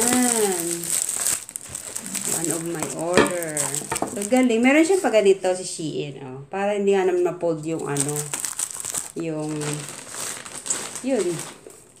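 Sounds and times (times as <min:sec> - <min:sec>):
person speaking: 0:00.0 - 0:01.0, 0:02.0 - 0:08.3, 0:09.1 - 0:09.9, 0:11.0 - 0:11.6
packaging crinkling and rustling: 0:00.0 - 0:05.1, 0:07.8 - 0:12.0.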